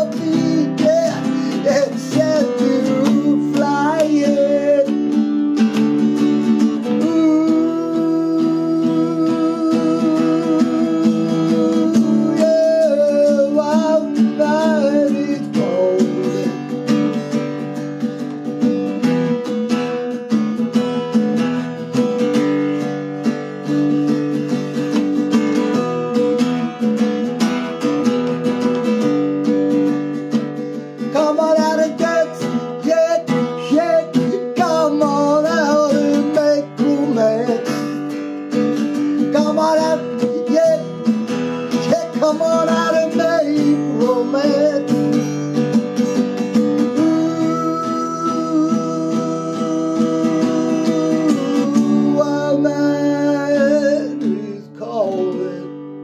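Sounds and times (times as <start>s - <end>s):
acoustic guitar strumming: 0.0s - 56.0s
man singing: 0.0s - 56.0s.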